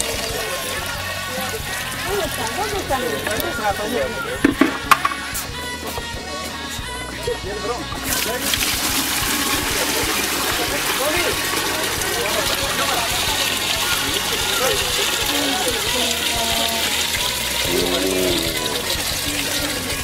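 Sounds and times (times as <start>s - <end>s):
water draining gurgling: 8.1s - 20.0s.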